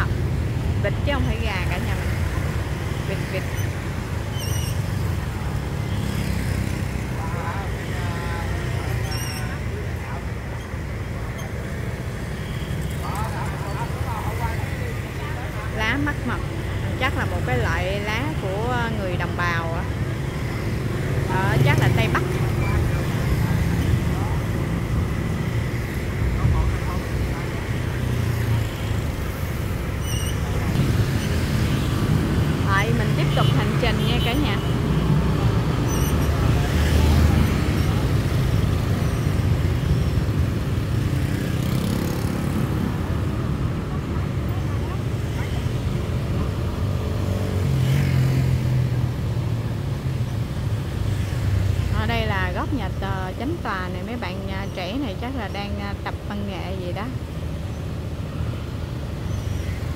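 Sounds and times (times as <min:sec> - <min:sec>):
motorbike and car engines rumbling: 0:00.0 - 0:59.9
people's voices: 0:12.8 - 0:20.0.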